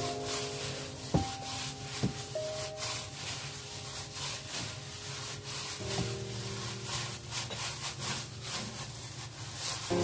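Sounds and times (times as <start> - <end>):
gloved hand kneading minced meat: 0.0 - 10.0
soft background music: 0.0 - 10.0.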